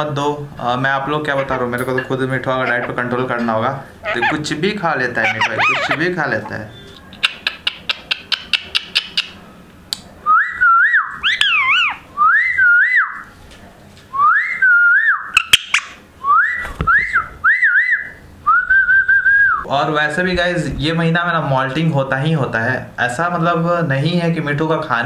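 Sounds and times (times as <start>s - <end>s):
parakeet whistling: 1.4s - 7.0s, 10.4s - 13.2s.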